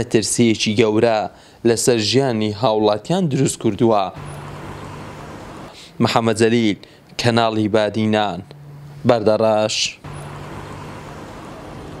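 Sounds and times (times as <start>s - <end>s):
street traffic noise: 4.1s - 12.0s
low engine hum: 4.2s - 5.8s, 10.0s - 12.0s.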